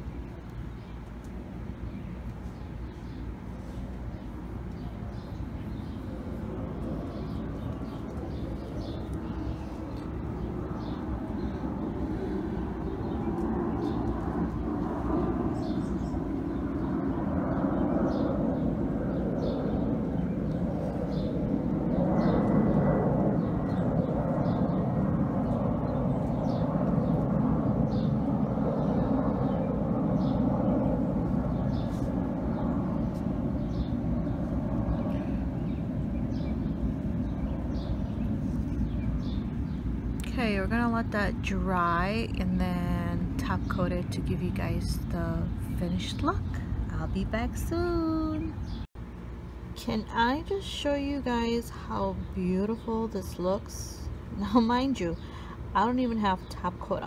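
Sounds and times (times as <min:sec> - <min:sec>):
distant traffic rumble: 0:00.0 - 0:57.0.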